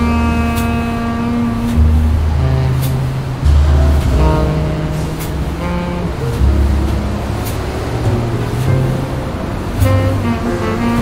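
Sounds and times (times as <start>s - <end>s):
sustained chords: 0.0s - 11.0s
upright bass notes: 0.0s - 11.0s.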